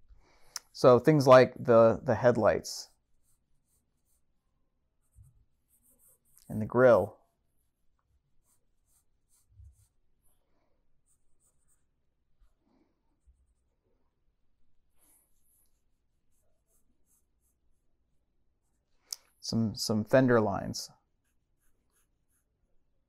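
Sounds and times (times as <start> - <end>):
pencil scratching on paper: 2.8 - 13.8, 14.9 - 18.9, 21.0 - 22.6.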